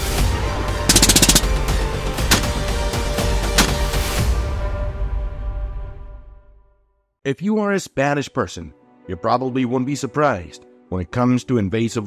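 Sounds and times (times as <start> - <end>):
background music: 0.0 - 12.0
rapid rifle fire: 0.9 - 1.7, 2.3 - 2.6.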